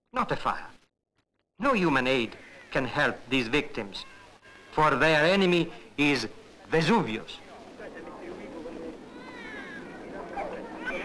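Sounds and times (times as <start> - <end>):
faint crowd hubbub: 1.6 - 11.0
small child crying: 9.1 - 10.0.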